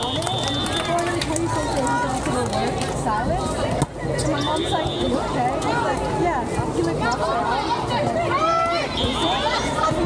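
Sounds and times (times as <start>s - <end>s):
people talking and calling: 0.0s - 10.0s.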